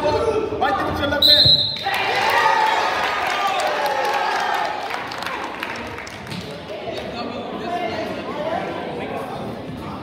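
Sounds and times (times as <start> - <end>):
referee's whistle blast: 1.2 - 1.8.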